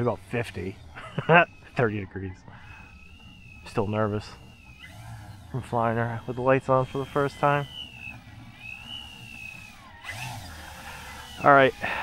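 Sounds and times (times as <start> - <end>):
model airplane motor whine: 0.0 - 12.0.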